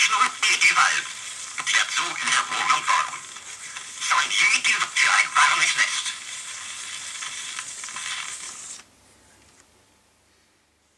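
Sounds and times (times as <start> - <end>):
record needle hiss and crackle: 0.0 - 10.9.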